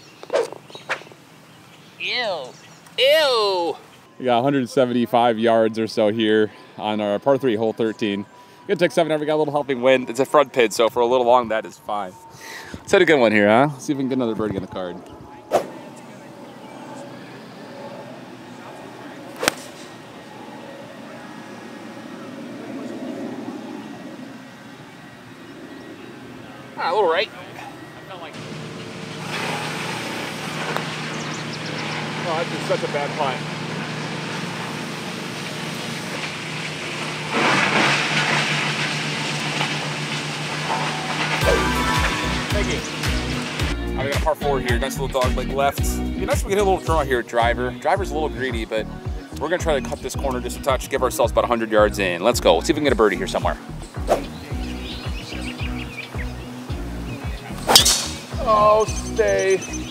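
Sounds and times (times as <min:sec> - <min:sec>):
golf club striking ball: 0:19.4 - 0:19.8, 0:57.6 - 0:58.4
background music: 0:41.4 - 0:59.9.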